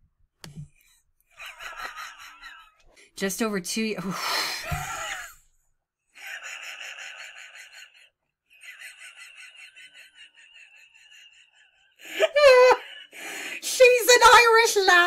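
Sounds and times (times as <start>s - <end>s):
woman laughing: 1.4s - 2.8s, 4.0s - 5.4s, 6.2s - 13.2s.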